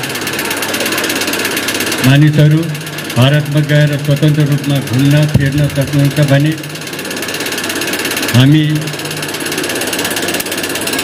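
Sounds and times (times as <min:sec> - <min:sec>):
electric fan rattling: 0:00.0 - 0:11.0.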